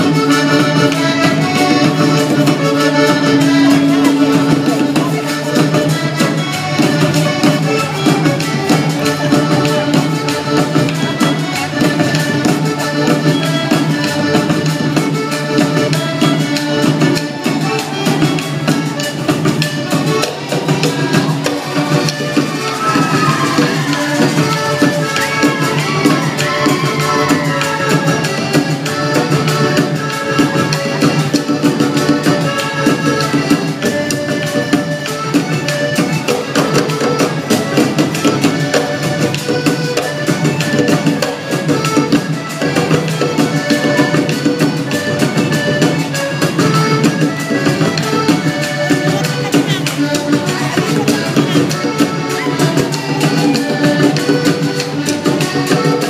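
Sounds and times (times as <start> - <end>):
accordion: 0.0 - 56.0
violin playing a melody: 0.0 - 56.0.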